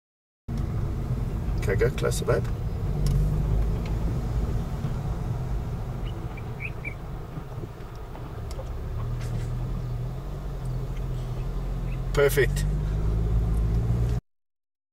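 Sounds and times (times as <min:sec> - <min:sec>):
car engine and road rumble: 0:00.5 - 0:14.2.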